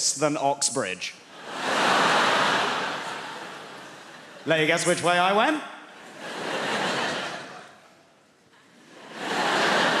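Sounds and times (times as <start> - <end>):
audience laughing and applauding: 1.4 - 4.7, 6.0 - 8.0, 8.6 - 10.0.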